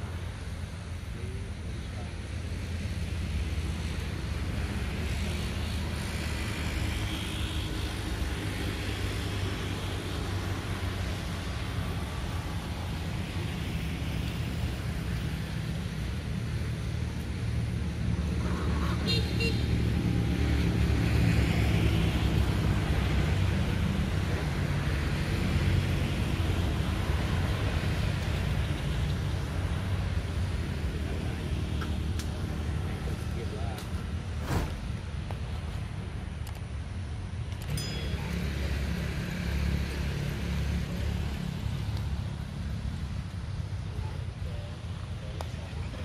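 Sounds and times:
road traffic rumble: 0:00.0 - 0:46.0.

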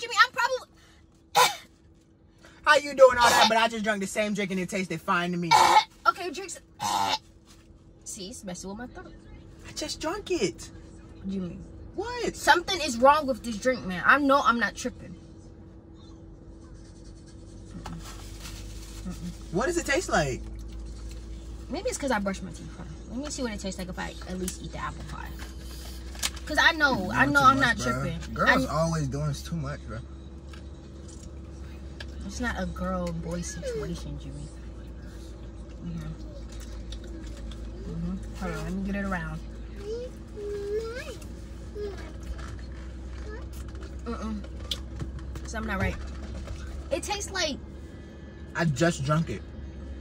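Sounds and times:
low car cabin hum: 0:00.0 - 0:50.0.

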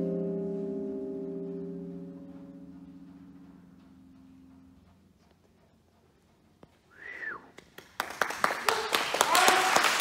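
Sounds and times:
mallet keyboard chord ringing: 0:00.0 - 0:04.5.

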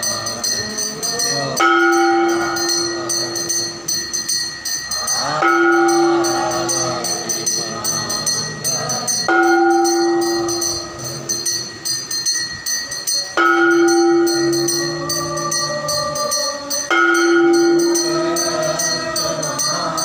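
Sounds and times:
hand bells ringing rapidly: 0:00.0 - 0:20.0.

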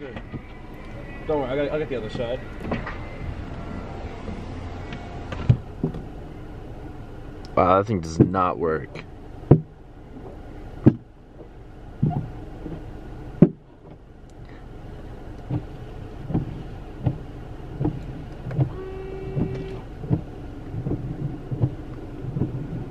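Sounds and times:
soft regular thumps: 0:00.0 - 0:06.4, 0:08.0 - 0:14.6, 0:15.4 - 0:22.9
low steady rumble: 0:00.0 - 0:22.9.

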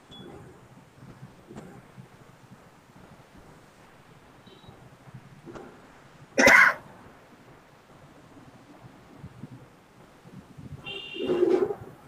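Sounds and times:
person coughing: 0:06.4 - 0:06.8.

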